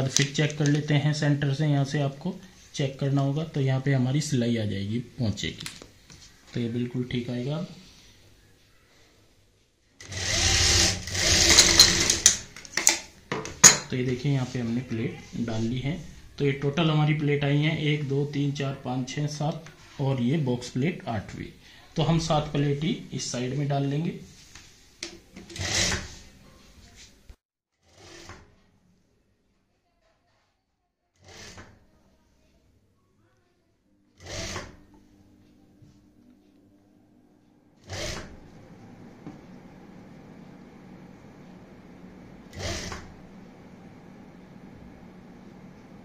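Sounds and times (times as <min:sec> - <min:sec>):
sewing machine stitching: 0:10.0 - 0:12.5, 0:25.4 - 0:26.2, 0:27.8 - 0:28.6, 0:31.2 - 0:31.9, 0:34.2 - 0:34.9, 0:37.8 - 0:38.7, 0:42.4 - 0:43.3.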